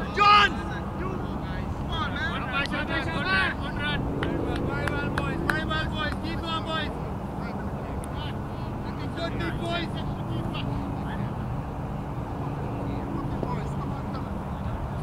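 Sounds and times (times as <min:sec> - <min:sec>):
players calling and talking: 0:00.0 - 0:15.0.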